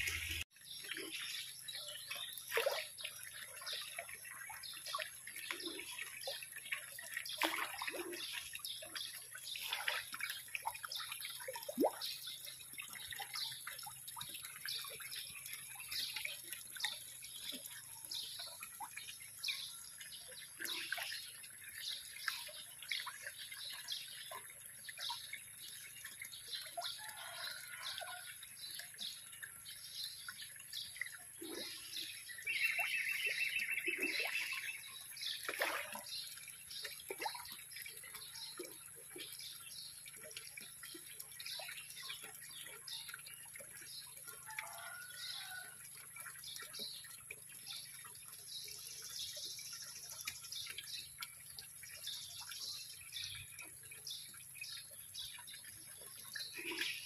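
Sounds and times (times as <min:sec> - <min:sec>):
faint water trickle: 0:00.0 - 0:57.0
fish splashing at water surface: 0:02.1 - 0:15.1, 0:30.5 - 0:39.3.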